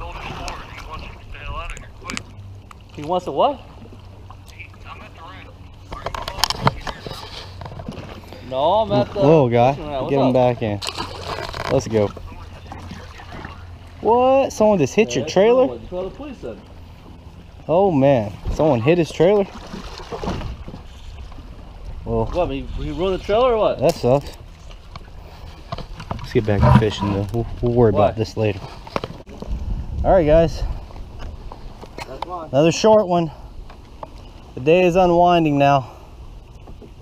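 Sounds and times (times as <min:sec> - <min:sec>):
faint water noise: 0:00.0 - 0:37.0
wind rumble on microphone: 0:24.8 - 0:32.0.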